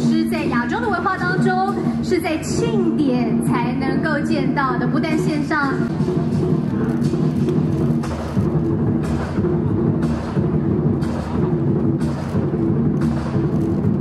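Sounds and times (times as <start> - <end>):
big drum rumbling: 5.8 - 14.0.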